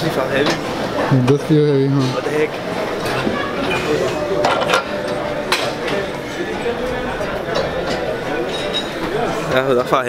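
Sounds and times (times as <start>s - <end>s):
murmur of voices: 0.0s - 10.0s
weight plates clanking: 2.1s - 9.6s.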